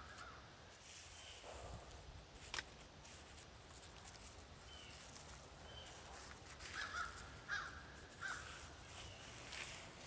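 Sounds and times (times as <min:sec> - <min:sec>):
crow cawing: 0:06.7 - 0:08.6.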